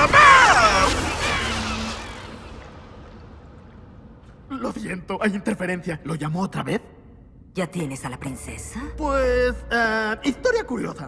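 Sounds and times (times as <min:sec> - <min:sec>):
electric crackle and whoosh: 0:00.0 - 0:04.5.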